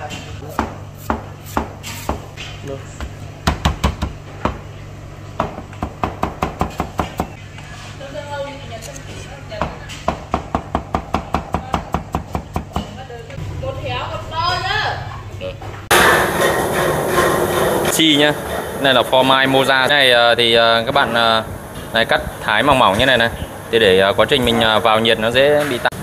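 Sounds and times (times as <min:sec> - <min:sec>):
low hum: 0:15.9 - 0:26.0.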